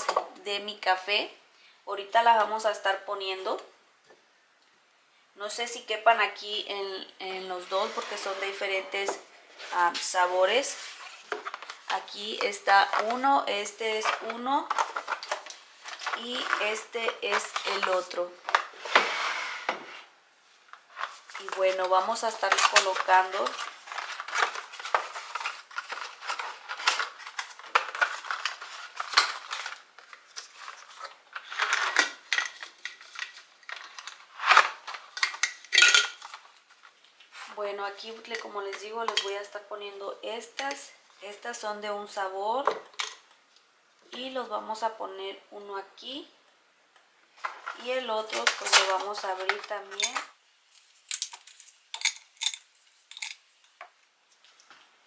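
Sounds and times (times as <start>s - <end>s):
capsules dropping into glass jar: 35.4s - 36.2s, 51.1s - 53.4s.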